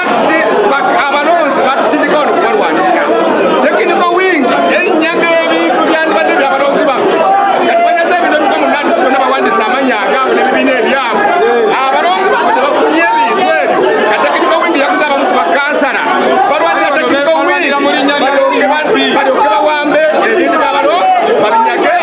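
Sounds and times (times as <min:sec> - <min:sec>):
man talking excitedly: 0:00.0 - 0:22.0
people talking over each other: 0:00.0 - 0:22.0.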